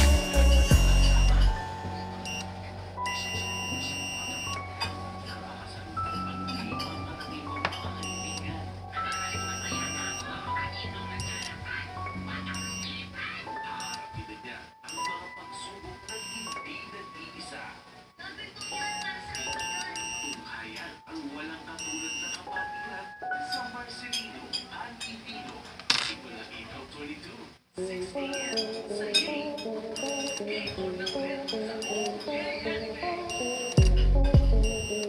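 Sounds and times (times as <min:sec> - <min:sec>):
electronic alarm buzzer beeps: 0:00.0 - 0:05.5, 0:06.1 - 0:13.1, 0:13.7 - 0:14.2, 0:14.8 - 0:15.2, 0:16.0 - 0:16.7, 0:18.6 - 0:20.8, 0:21.7 - 0:22.6, 0:28.3 - 0:32.4, 0:33.3 - 0:35.0
synth background music: 0:00.0 - 0:15.0, 0:28.2 - 0:35.0.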